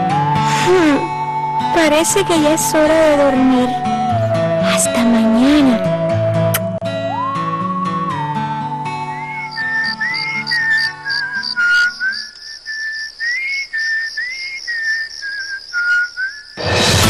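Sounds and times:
whistled melody: 0.0 - 16.7.

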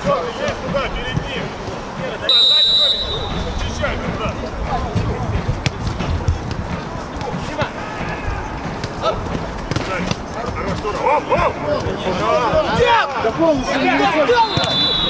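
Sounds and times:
players shouting: 0.0 - 15.0
referee's whistle blast: 2.3 - 3.6, 14.2 - 15.0.

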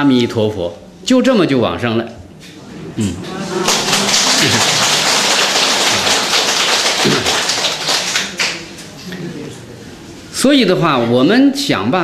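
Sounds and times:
audience applauding: 3.5 - 8.6.

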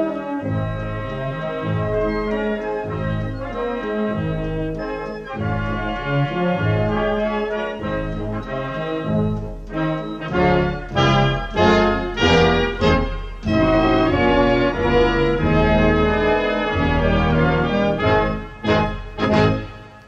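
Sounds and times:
wind band playing funeral march: 0.0 - 20.0.

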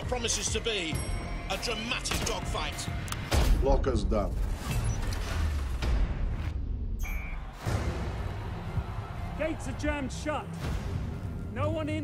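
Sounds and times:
short electronic beep: 7.0 - 7.4.

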